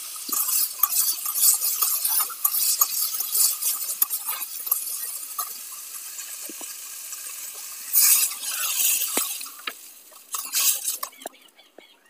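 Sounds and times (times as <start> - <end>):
potatoes sizzling in hot oil: 0.0 - 11.3.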